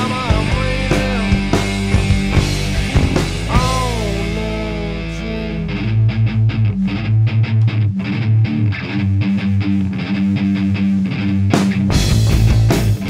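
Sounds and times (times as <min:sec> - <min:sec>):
bass guitar: 0:00.0 - 0:13.0
electric guitar picked riff: 0:00.0 - 0:13.0
held rock chord ringing: 0:00.0 - 0:13.0.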